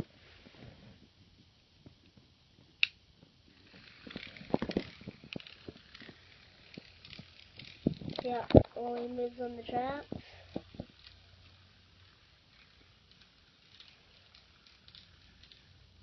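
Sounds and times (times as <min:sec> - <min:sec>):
plastic toy trains clicking: 0:02.8 - 0:09.6, 0:10.2 - 0:15.9.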